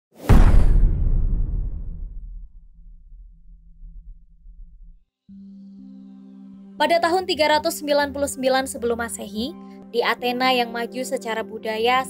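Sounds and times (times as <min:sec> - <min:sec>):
whoosh with loud hit: 0:00.2 - 0:05.0
deep tail: 0:00.3 - 0:05.0.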